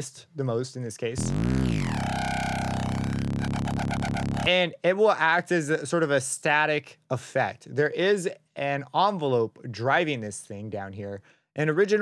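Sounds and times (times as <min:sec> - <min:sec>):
synth bass note with ripple: 0:01.2 - 0:04.5.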